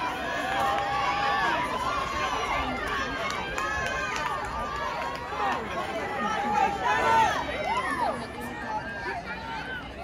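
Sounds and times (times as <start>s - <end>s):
spectators shouting and cheering: 0.0s - 10.0s.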